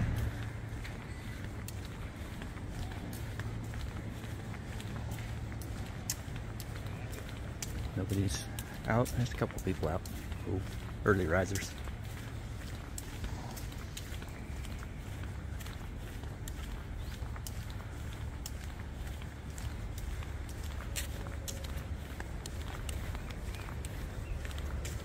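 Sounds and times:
footsteps on tiles: 0:00.0 - 0:25.0
steady low rumble: 0:00.0 - 0:25.0.

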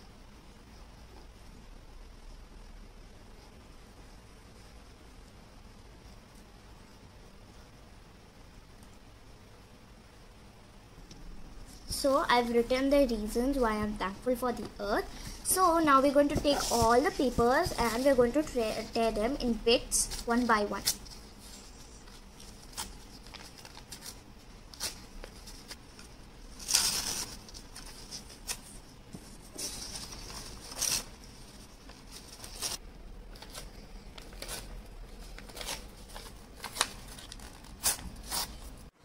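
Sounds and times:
paper rustling: 0:14.4 - 0:38.9
paper tearing: 0:26.6 - 0:28.8, 0:29.5 - 0:32.8, 0:33.4 - 0:38.8.

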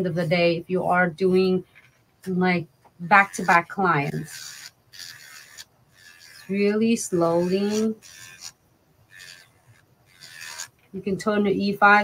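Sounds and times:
electric nail file grinding: 0:03.0 - 0:12.0.

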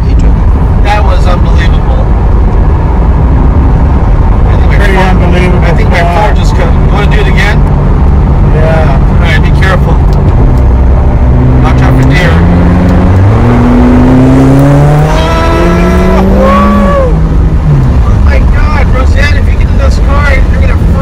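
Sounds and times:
voices in car: 0:00.0 - 0:10.4, 0:11.5 - 0:12.6, 0:14.9 - 0:21.0
car engine accelerating: 0:00.0 - 0:21.0.

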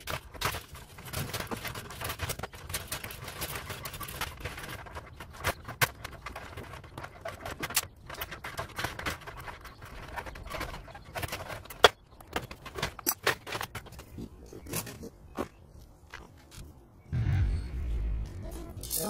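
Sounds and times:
metallic clicks and scrapes: 0:00.0 - 0:15.1.

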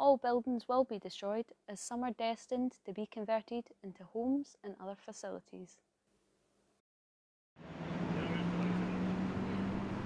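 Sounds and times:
motor vehicle noise: 0:07.6 - 0:10.0.

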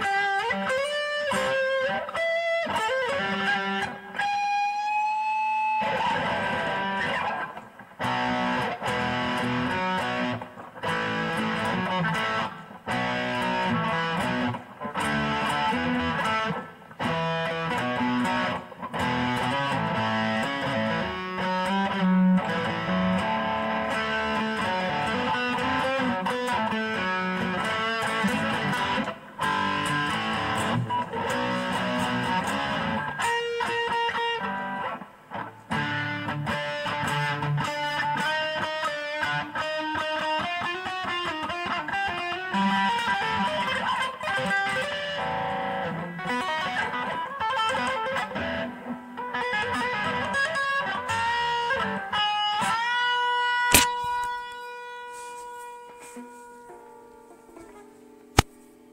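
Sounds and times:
electric guitar riffs: 0:00.0 - 0:58.9
sharp click: 0:53.7 - 0:54.6, 0:58.3 - 0:58.7.

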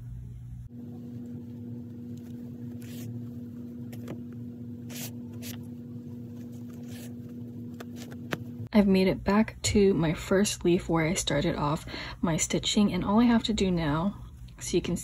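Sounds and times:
low electrical hum: 0:00.0 - 0:15.0
yarn rustling through stitches: 0:00.9 - 0:03.6.

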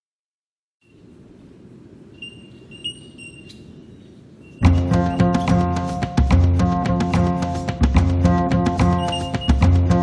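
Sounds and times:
short high electronic beeps: 0:02.2 - 0:03.6, 0:08.8 - 0:09.7
low rumbling synthesiser hum: 0:04.6 - 0:10.0.

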